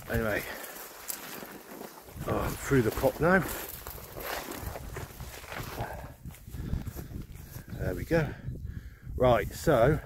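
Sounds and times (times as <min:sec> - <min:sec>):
grass stalks rustling: 0:00.0 - 0:08.2
footsteps through long grass: 0:00.0 - 0:08.4.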